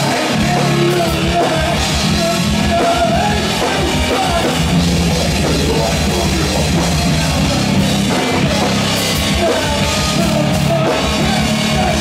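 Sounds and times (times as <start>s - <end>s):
drum kit with cymbals: 0.0s - 12.0s
electric bass: 0.0s - 12.0s
electric guitar: 0.0s - 12.0s.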